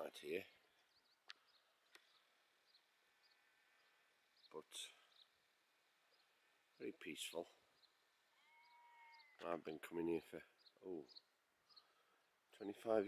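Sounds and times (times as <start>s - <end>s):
faint bird chirps: 0.4s - 5.4s, 6.1s - 9.6s, 10.2s - 12.3s.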